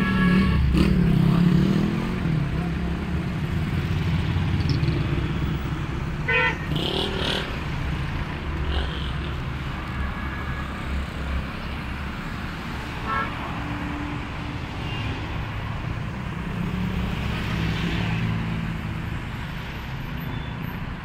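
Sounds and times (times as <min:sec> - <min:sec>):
car horn toot: 0:00.0 - 0:00.9, 0:06.3 - 0:06.8
city traffic: 0:00.0 - 0:21.0.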